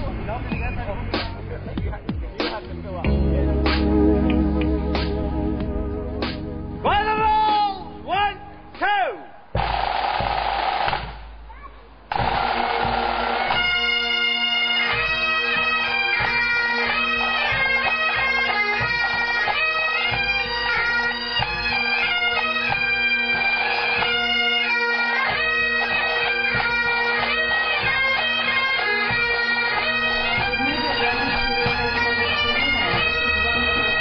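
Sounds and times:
bagpipes playing over drones: 0:12.1 - 0:34.0.

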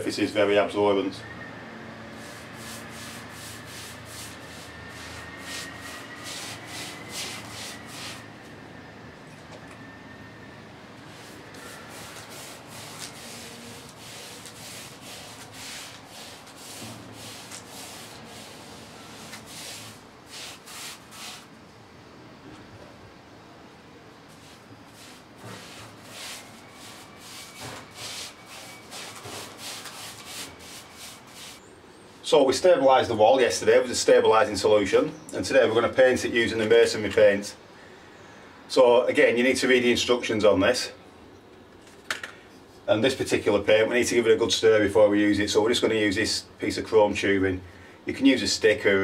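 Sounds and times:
paintbrush rasping on render: 0:02.1 - 0:08.3, 0:11.1 - 0:21.5, 0:24.3 - 0:31.6.

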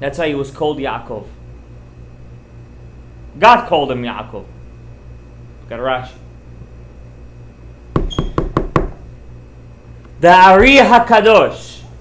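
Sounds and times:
quick sharp knocks: 0:08.0 - 0:09.0.

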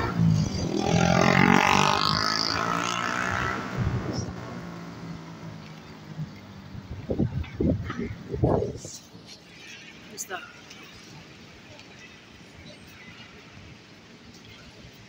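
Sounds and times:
motor vehicle passing: 0:00.0 - 0:08.3.

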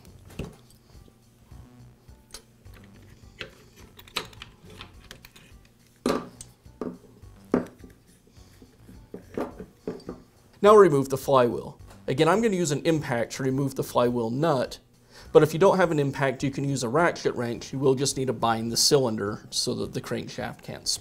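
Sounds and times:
wires clicking and rattling: 0:02.3 - 0:06.6.

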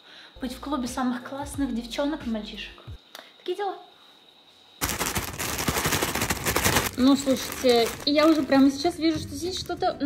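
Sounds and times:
plastic bag crinkling: 0:04.8 - 0:09.8.

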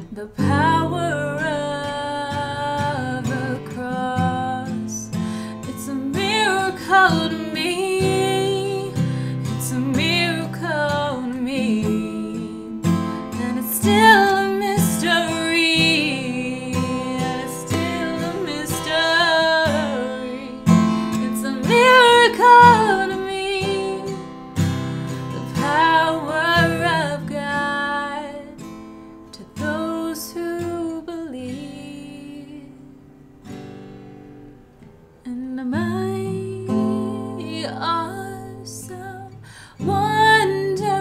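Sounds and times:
woman singing: 0:00.0 - 0:33.0, 0:35.2 - 0:41.0
strummed acoustic guitar: 0:00.0 - 0:41.0.

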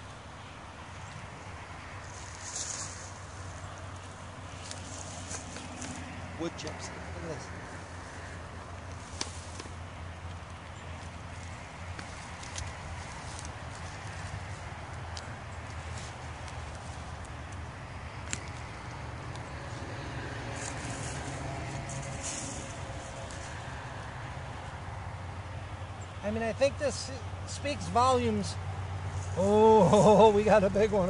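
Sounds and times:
hands digging through mulch: 0:02.0 - 0:07.4, 0:20.5 - 0:23.6.

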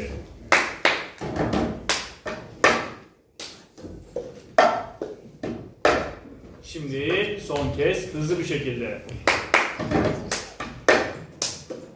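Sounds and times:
hand claps: 0:00.5 - 0:01.2, 0:01.8 - 0:02.8, 0:03.4 - 0:03.8, 0:09.1 - 0:11.9.

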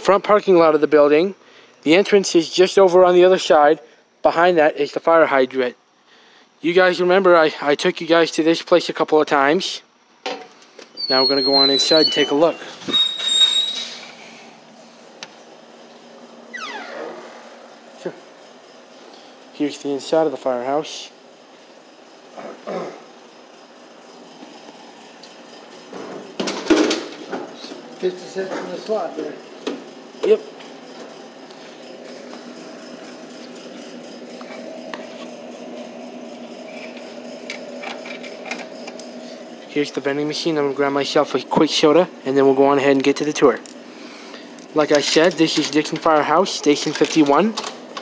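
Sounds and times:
vending machine humming: 0:10.6 - 0:48.0
door squeak: 0:11.0 - 0:14.2, 0:16.5 - 0:17.5.

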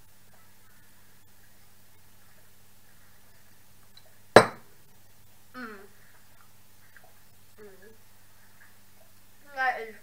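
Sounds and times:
tableware clinking: 0:04.4 - 0:04.6.

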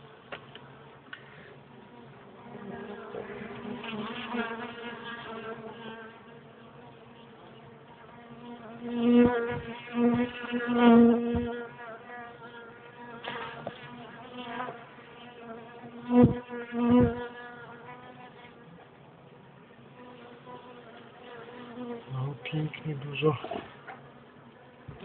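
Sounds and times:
honeybees buzzing: 0:00.0 - 0:25.0.

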